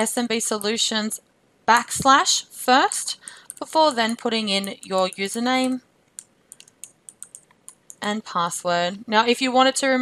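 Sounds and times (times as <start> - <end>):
keyboard typing: 3.2 - 8.2.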